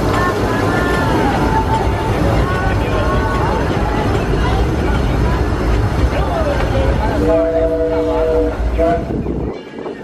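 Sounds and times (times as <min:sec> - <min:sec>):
train rumbling on track: 0:00.0 - 0:10.0.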